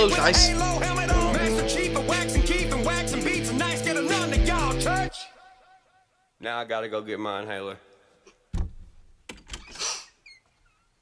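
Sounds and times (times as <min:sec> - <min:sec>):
door thump: 0:08.5 - 0:09.6.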